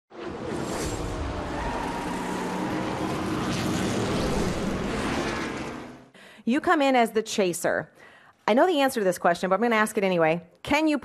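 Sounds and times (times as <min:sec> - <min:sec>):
race car engine: 0:00.1 - 0:06.1.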